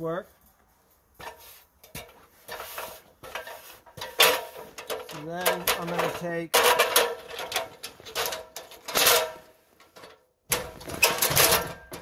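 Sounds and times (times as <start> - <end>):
metal ladder clinking and scraping: 1.2 - 12.0.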